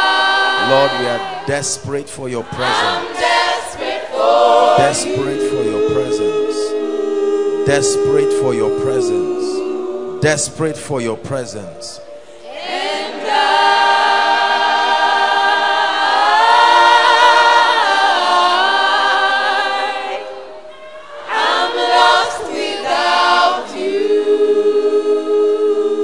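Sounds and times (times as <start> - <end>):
choir singing unaccompanied: 0.0 - 26.0.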